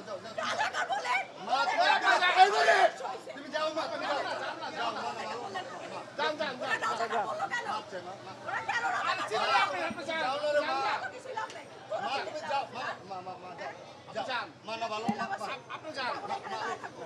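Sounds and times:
people arguing: 0.0s - 17.0s.

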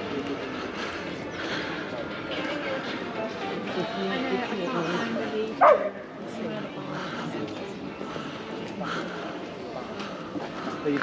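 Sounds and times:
crowd chatter: 0.0s - 11.0s
dog bark: 5.6s - 6.0s.

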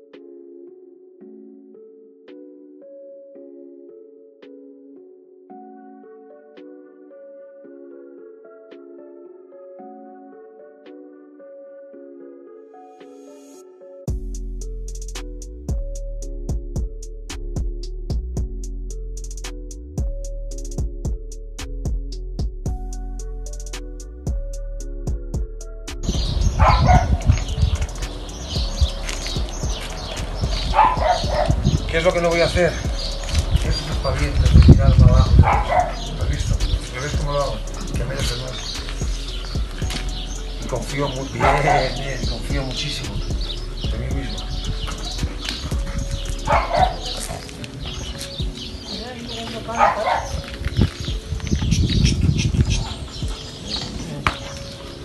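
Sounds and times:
electronic music: 0.0s - 55.0s
wind buffeting microphone: 26.0s - 55.0s
dog barking: 26.4s - 27.6s, 30.5s - 31.8s, 35.2s - 36.3s, 41.4s - 42.2s, 44.4s - 47.5s, 49.7s - 50.5s.

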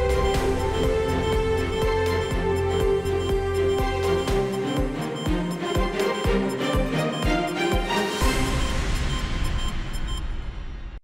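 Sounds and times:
news theme music: 0.0s - 10.4s.

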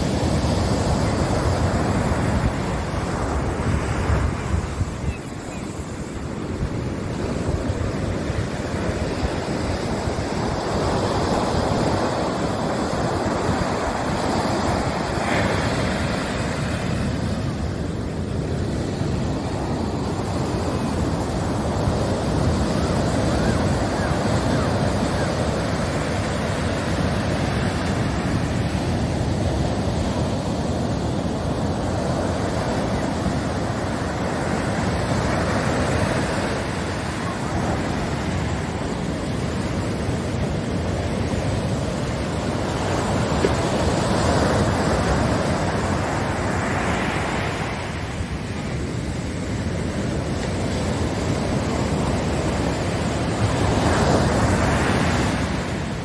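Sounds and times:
wind buffeting microphone: 0.0s - 46.6s
ocean surf breaking on beach: 0.0s - 56.0s.

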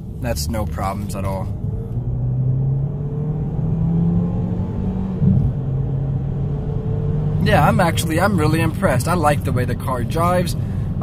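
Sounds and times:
car engine accelerating: 0.2s - 11.0s.

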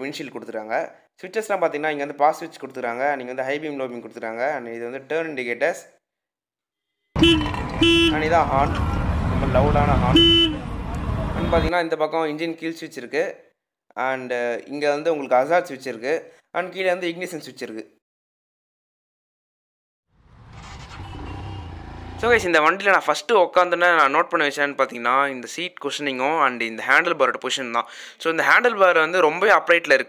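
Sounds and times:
motorcycle horn short beeps: 7.2s - 8.3s, 10.2s - 10.6s.

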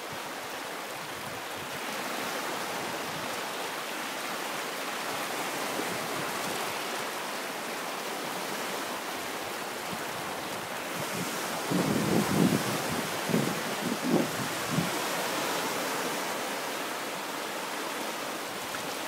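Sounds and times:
small waves washing over sand: 0.0s - 19.0s.

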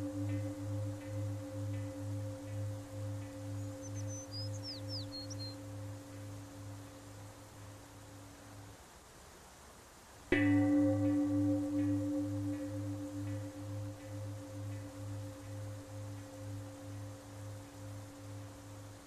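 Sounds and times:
singing bowl ringing: 0.0s - 7.7s, 10.3s - 19.0s.

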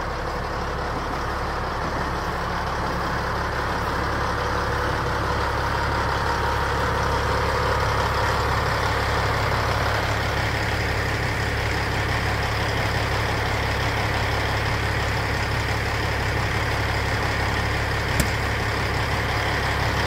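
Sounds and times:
diesel truck engine idling: 0.0s - 20.0s
brief click: 18.2s - 18.4s.

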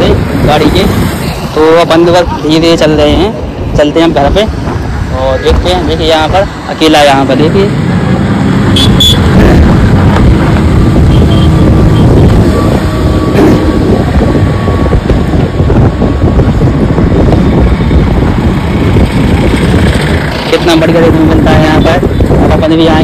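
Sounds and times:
traffic passing on bridge: 0.0s - 23.0s
wind buffeting microphone: 0.0s - 23.0s.

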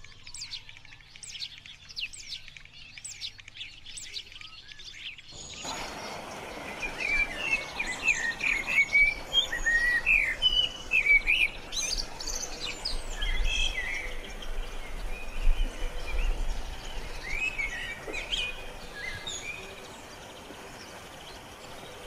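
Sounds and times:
blackbird singing warbling phrases: 0.0s - 22.0s
high bird chirps: 0.0s - 22.0s
background hiss: 5.3s - 22.0s.

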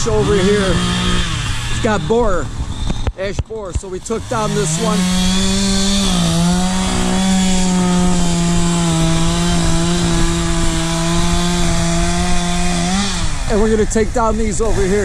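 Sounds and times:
chainsaw at high revs: 0.0s - 15.0s.

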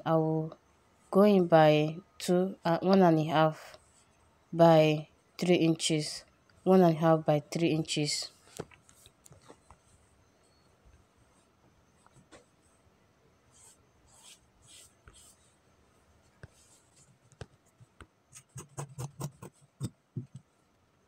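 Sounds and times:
marker scratching on fabric: 13.5s - 15.6s, 16.3s - 20.0s.

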